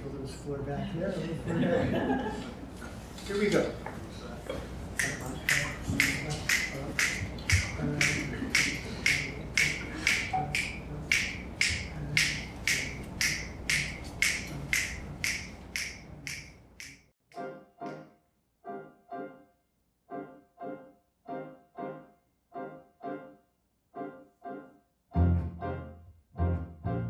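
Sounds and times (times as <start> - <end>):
piano chords: 5.0 - 16.4, 17.3 - 27.0
finger snaps: 5.0 - 17.0.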